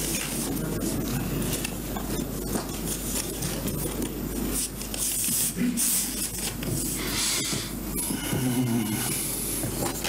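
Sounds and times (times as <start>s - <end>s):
papers rustling: 0.0s - 7.7s
low mains hum: 0.0s - 10.0s.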